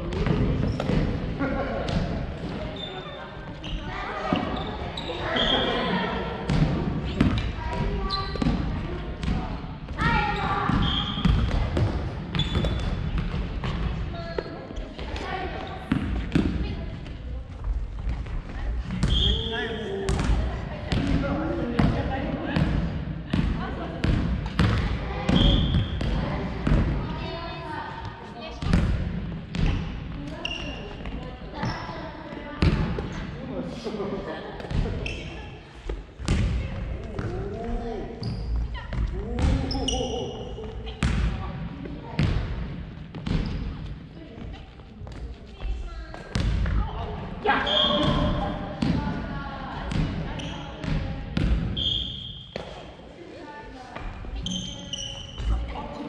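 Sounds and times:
high shoe squeaks: 0:02.7 - 0:05.9, 0:08.0 - 0:08.5, 0:10.3 - 0:11.3, 0:12.4 - 0:12.9, 0:19.0 - 0:19.9, 0:30.3 - 0:31.0, 0:35.0 - 0:35.6, 0:39.7 - 0:40.6, 0:47.6 - 0:48.5, 0:50.4 - 0:50.8, 0:51.8 - 0:52.6, 0:54.4 - 0:55.7.

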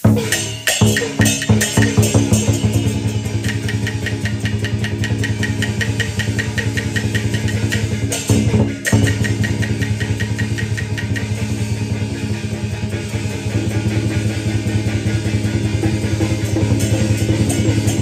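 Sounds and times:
fast percussion clicks: 0:00.0 - 0:18.0
loud percussion stroke: 0:00.0 - 0:18.0
sustained low instrumental notes: 0:01.1 - 0:18.0.

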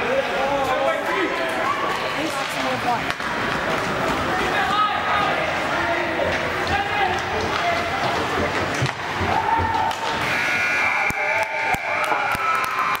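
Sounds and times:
voices and shouts of spectators: 0:00.0 - 0:13.0
hockey sticks and puck clicking: 0:01.9 - 0:04.8, 0:06.2 - 0:10.3.

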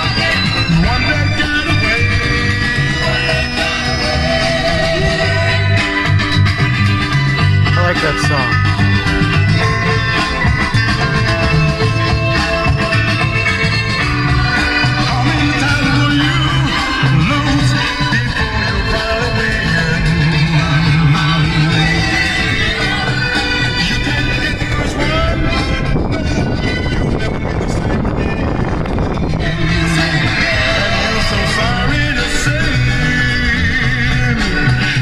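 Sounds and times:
song playing through car stereo: 0:00.0 - 0:35.0.

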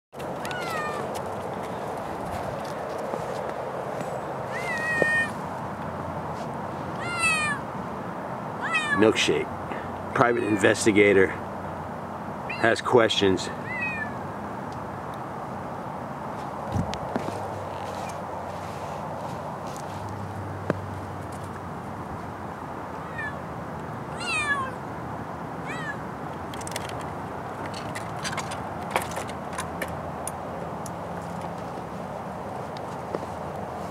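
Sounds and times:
cat meowing loudly: 0:00.4 - 0:01.1, 0:04.5 - 0:05.4, 0:07.0 - 0:07.6, 0:08.6 - 0:09.1, 0:12.5 - 0:12.8, 0:13.6 - 0:14.2, 0:23.0 - 0:23.4, 0:24.1 - 0:24.8, 0:25.6 - 0:26.0.

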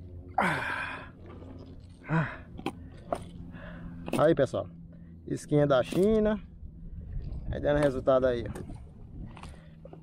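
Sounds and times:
low grunt: 0:00.3 - 0:01.1, 0:02.0 - 0:02.7.

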